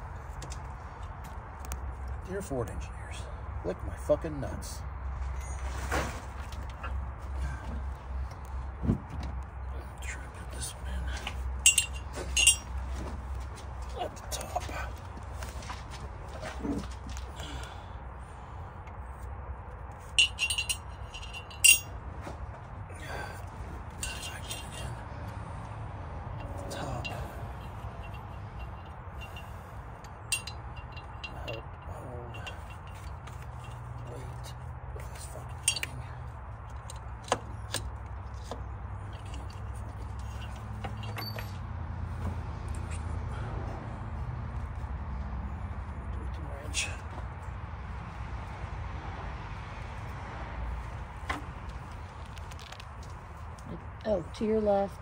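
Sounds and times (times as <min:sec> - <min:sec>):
metal tools clinking: 0:11.1 - 0:15.7, 0:20.0 - 0:22.0, 0:24.0 - 0:24.9, 0:26.4 - 0:41.7.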